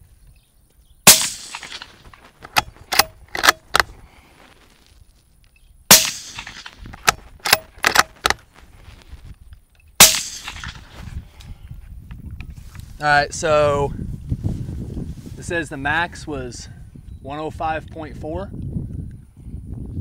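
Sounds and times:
suppressed rifle shots: 1.0 - 4.0, 5.9 - 8.4, 10.0 - 11.0
rifle action clicks: 1.1 - 4.0, 5.9 - 8.4.

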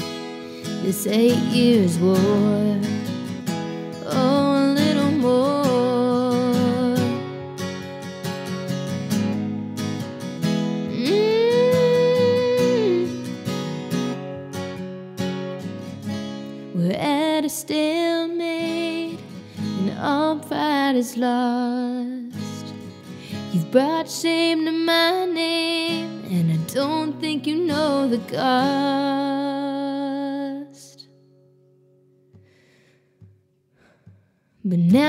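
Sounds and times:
strummed acoustic guitar: 0.0 - 35.0.

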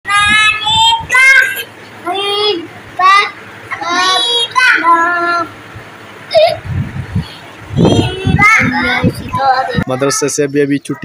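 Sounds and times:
toddler sing-song voice: 0.1 - 5.6, 7.7 - 11.0.

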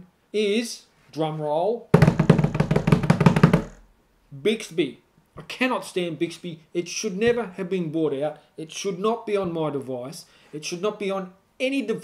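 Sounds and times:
rapid drum roll: 2.0 - 3.8.

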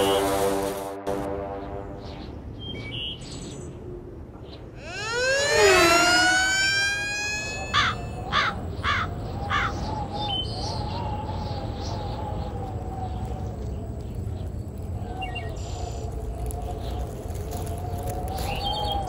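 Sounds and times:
siren winding up: 4.8 - 8.6
wavering siren-like tone: 4.8 - 8.8
crow cawing: 4.8 - 9.8.

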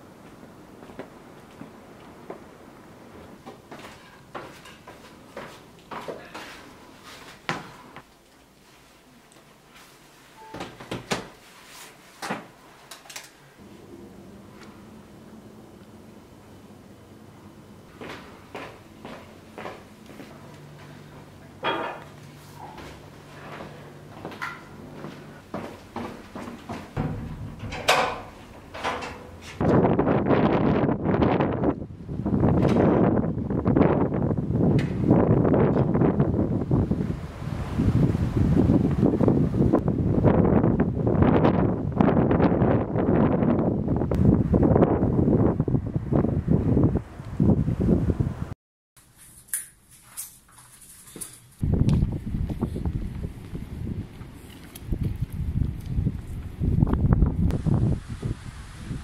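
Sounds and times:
wind buffeting microphone: 27.0 - 48.6, 51.6 - 59.0.

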